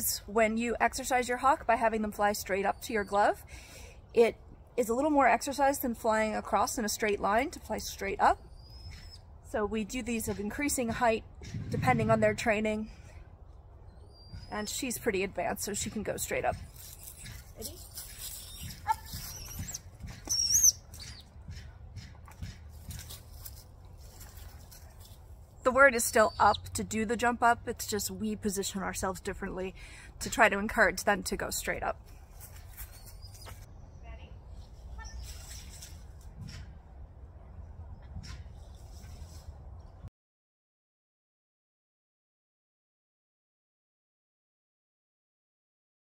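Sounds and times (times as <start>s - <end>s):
wind rumble on microphone: 11.0s - 13.2s.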